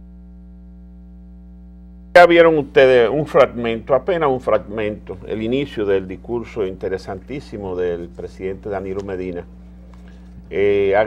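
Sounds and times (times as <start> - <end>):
electrical mains hum: 0.0 - 11.0
speech: 2.2 - 9.5, 10.5 - 11.0.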